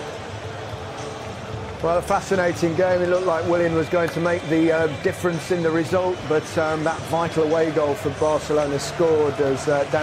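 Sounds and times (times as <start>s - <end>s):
stadium crowd noise: 0.0s - 10.0s.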